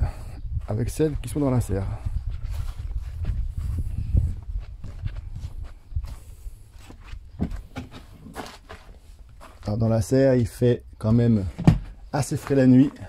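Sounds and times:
footsteps: 0.6s - 10.6s, 11.4s - 13.0s.

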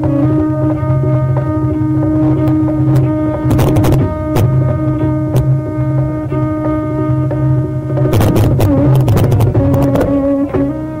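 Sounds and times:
tambura drone: 0.0s - 11.0s.

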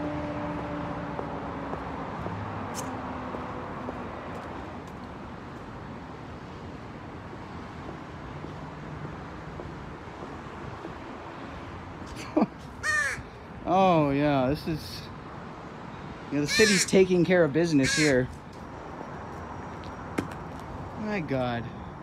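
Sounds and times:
low city background: 0.0s - 22.0s
crow cawing: 12.8s - 13.3s, 16.5s - 17.0s, 17.8s - 18.3s.

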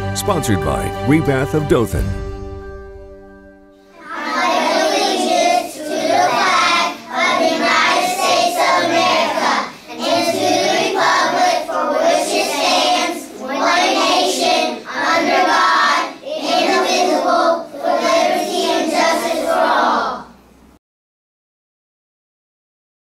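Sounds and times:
children reciting in unison: 3.8s - 20.4s.

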